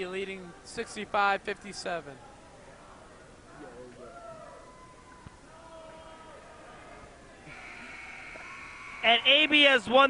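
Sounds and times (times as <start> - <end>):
faint crowd voices and shouts: 0.0 - 10.0
high electronic buzzer tone: 7.5 - 9.5.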